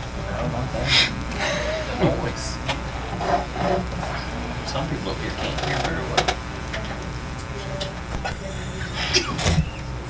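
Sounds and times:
faint indistinct voices: 0.0s - 10.0s
low room hum: 0.0s - 10.0s.

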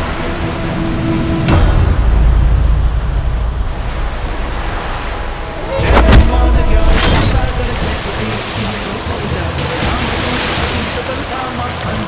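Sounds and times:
deep loud rumble: 0.0s - 9.5s
surf washing: 0.0s - 12.0s
sudden loud hit: 1.4s - 8.3s.

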